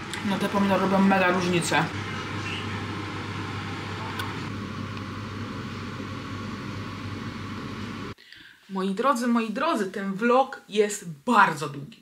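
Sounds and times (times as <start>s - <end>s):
machine hum: 0.0s - 8.2s.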